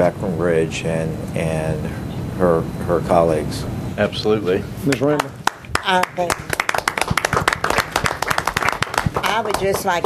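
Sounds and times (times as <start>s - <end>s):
people applauding: 4.9s - 10.0s.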